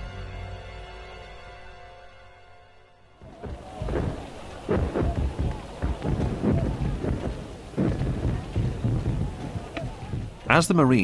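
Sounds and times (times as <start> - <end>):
heavy booms and thuds: 3.2 - 10.6
continuous rumble: 3.2 - 11.0.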